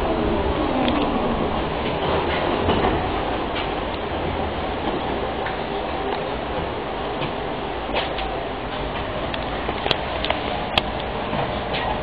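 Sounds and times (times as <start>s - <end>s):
tram wheels rumbling on rails: 0.0s - 12.0s.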